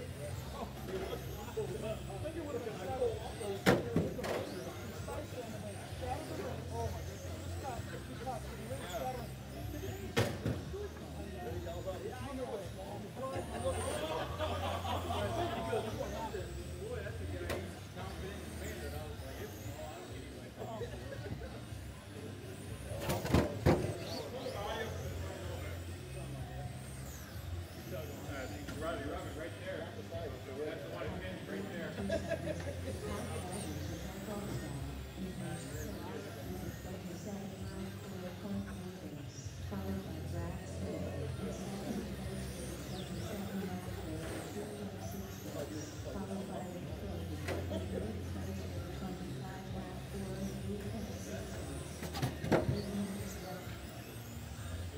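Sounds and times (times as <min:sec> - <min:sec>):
people talking: 0:00.0 - 0:54.9
rc car motor whines: 0:00.0 - 0:54.9.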